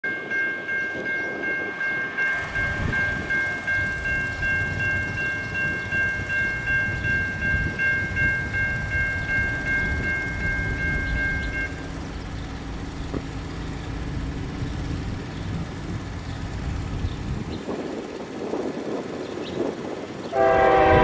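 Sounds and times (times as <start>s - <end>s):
railroad crossing bell ringing: 0.0s - 21.0s.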